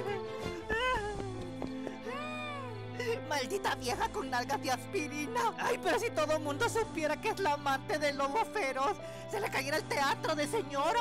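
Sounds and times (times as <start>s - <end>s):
woman crying: 0.0s - 6.8s, 8.2s - 11.0s
soft orchestral music: 0.0s - 11.0s.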